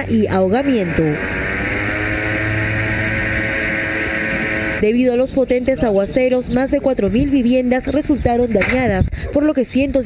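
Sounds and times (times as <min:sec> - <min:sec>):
boat motor running: 0:00.0 - 0:05.2.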